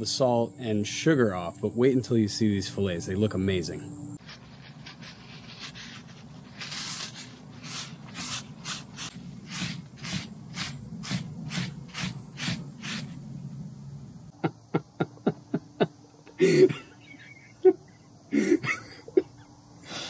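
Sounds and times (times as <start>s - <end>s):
paper towel rubbing fish fillets: 4.2s - 13.1s.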